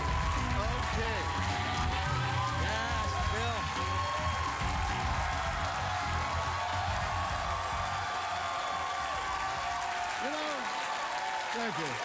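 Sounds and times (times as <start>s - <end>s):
band music: 0.0s - 7.6s
audience applauding: 0.0s - 12.0s.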